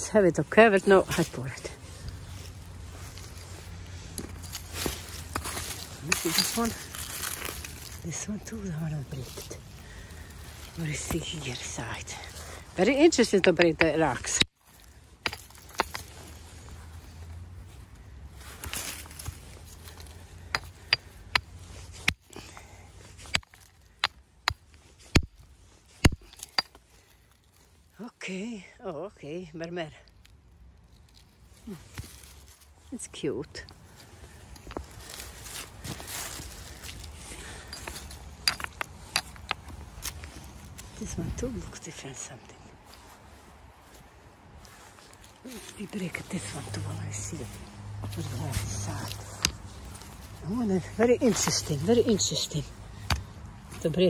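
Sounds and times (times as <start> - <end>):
rustling on gravel and leaves: 0.0 - 54.0.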